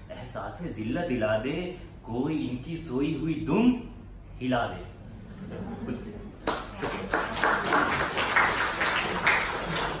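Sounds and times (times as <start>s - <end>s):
audience applauding: 6.4s - 10.0s.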